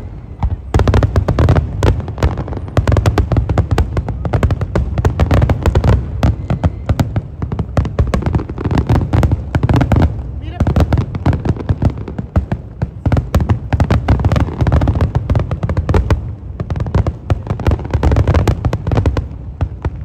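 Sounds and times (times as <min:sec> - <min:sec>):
deep firework booms: 0:00.0 - 0:20.0
fireworks bangs and crackles: 0:00.0 - 0:20.0.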